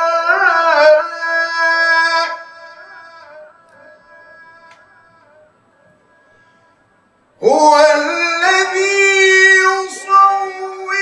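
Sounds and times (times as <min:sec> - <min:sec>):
man reciting melodically: 0:00.0 - 0:06.7, 0:07.4 - 0:11.0.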